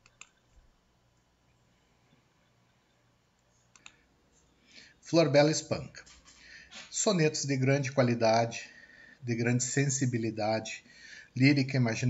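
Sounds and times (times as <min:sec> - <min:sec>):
faint sharp clicks: 0:03.4 - 0:04.0.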